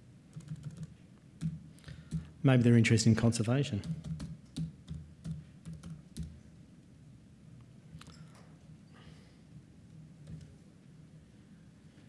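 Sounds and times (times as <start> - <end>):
typing on computer keyboard: 0.3 - 2.3, 3.8 - 6.4, 10.2 - 10.6.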